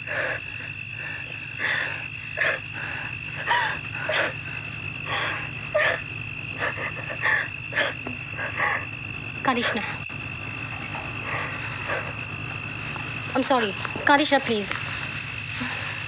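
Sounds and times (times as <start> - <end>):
night insects trilling: 0.0 - 16.0.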